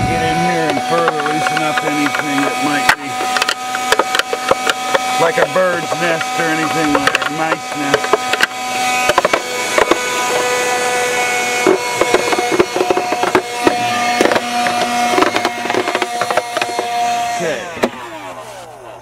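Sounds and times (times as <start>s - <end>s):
debris rattling up nozzle: 0.0s - 17.1s
vacuum cleaner running: 0.0s - 19.0s
vacuum motor winding down: 0.0s - 19.0s.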